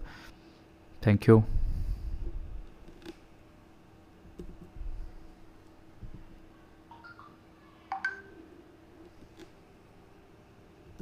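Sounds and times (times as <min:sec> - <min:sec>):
faint steady hum: 0:00.0 - 0:11.0
short electronic beeps: 0:06.9 - 0:07.3.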